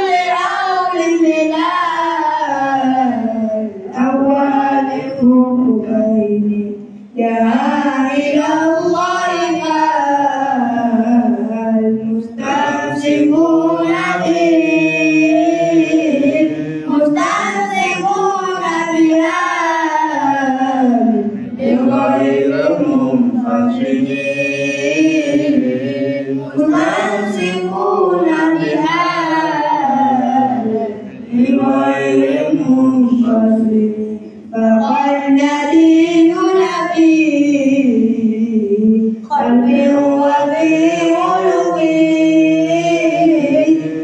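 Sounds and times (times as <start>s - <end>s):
man chanting melodically: 0.0s - 37.0s.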